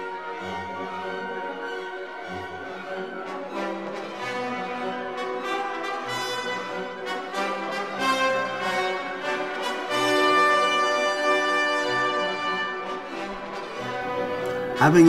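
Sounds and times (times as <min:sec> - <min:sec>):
orchestral music with brass: 0:00.0 - 0:15.0.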